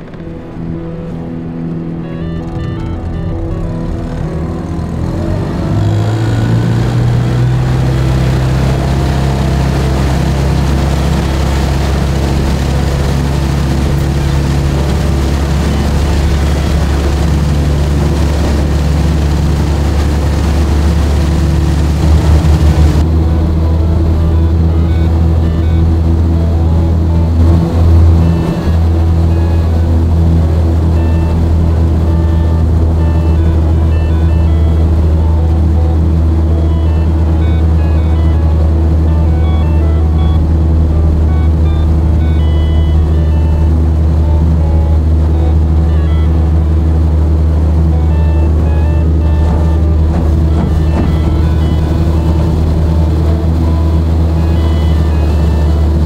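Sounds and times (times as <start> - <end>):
outboard motor running: 0.0 - 56.0.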